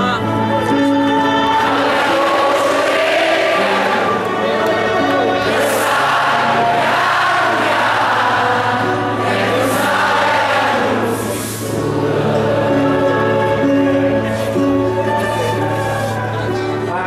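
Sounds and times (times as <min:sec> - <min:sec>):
crowd singing along: 0:00.0 - 0:17.0.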